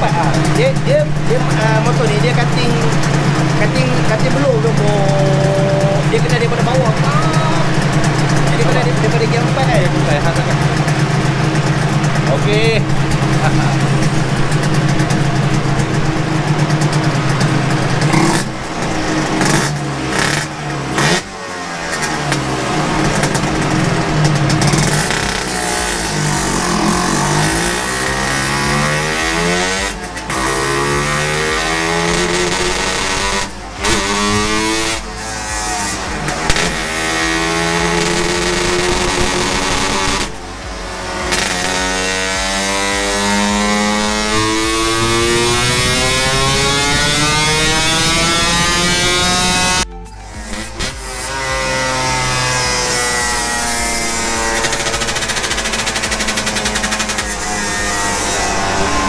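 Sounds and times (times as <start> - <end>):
motorcycle engine revving hard: 0.0 - 59.0.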